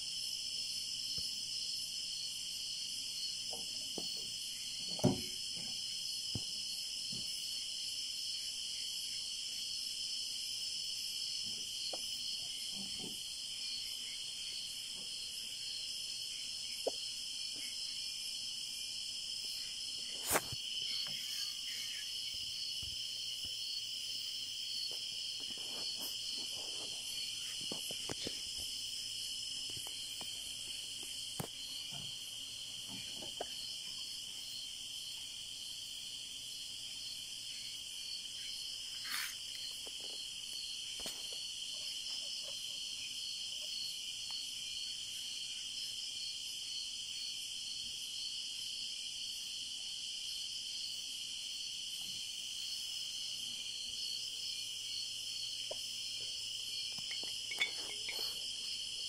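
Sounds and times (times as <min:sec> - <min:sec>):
crickets chirping: 0:00.0 - 0:59.0.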